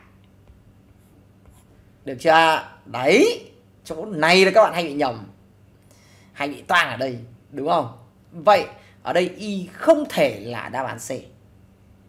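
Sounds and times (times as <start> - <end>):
stylus scratching on tablet: 0.8 - 1.8.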